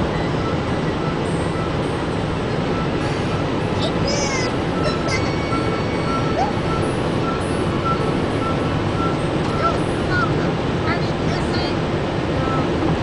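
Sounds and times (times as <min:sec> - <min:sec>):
car road and wind noise: 0:00.0 - 0:13.0.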